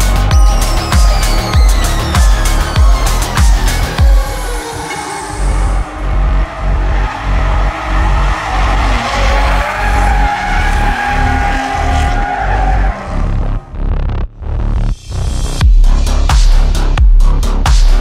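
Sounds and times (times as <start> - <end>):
car engines revving: 0.0 - 15.5
electronic music with pulsing beat: 0.0 - 18.0
tyres squealing: 0.3 - 13.3.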